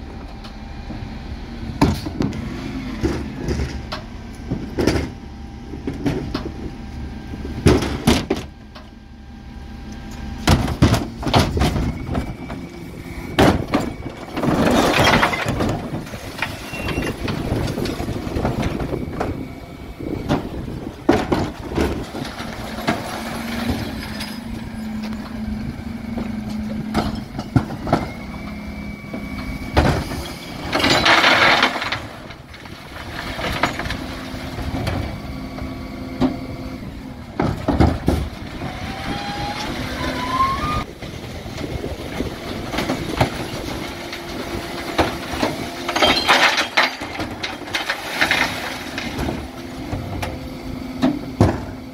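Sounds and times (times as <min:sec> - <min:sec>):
refuse lorry engine and hydraulics hum: 0:00.0 - 0:51.9
bins knocking and clattering: 0:04.5 - 0:05.2, 0:07.6 - 0:08.5, 0:10.5 - 0:12.6, 0:13.3 - 0:19.4, 0:20.2 - 0:24.5, 0:29.7 - 0:35.2, 0:37.4 - 0:38.4, 0:42.2 - 0:50.4, 0:51.0 - 0:51.9.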